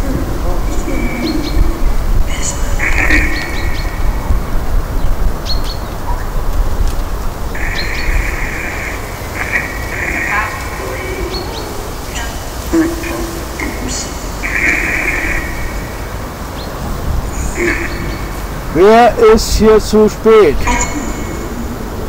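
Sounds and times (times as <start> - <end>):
wind rumble on microphone: 0.0 - 22.0
high bird chirps: 1.1 - 6.3, 7.6 - 18.6
bursts of hiss: 7.1 - 19.8.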